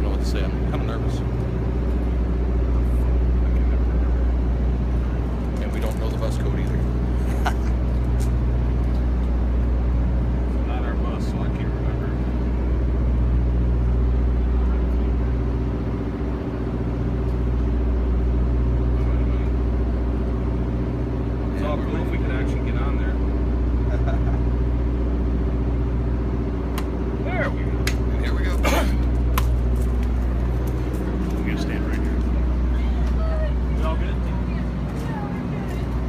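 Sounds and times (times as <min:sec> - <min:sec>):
bus engine idling: 0:00.0 - 0:36.0.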